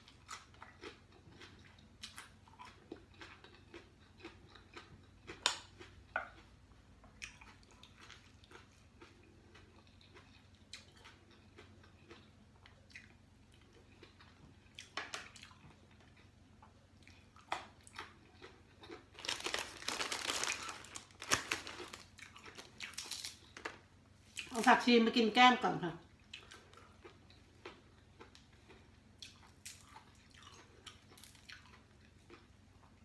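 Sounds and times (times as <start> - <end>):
quiet chewing: 0.0 - 24.6, 26.0 - 33.0
crisp crunching and rustling: 18.8 - 24.7.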